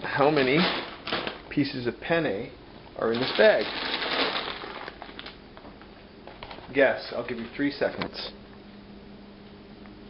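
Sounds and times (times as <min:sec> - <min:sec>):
plastic bag crinkling: 0:00.2 - 0:01.5, 0:03.1 - 0:05.4.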